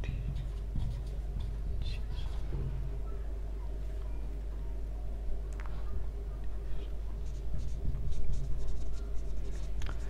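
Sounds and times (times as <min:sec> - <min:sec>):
marker writing on whiteboard: 0:00.0 - 0:02.4, 0:06.8 - 0:10.0
low hum: 0:00.0 - 0:10.0.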